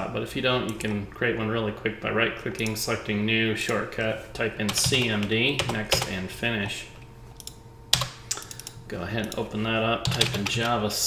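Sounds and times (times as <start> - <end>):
computer mouse clicking: 7.4 - 9.4.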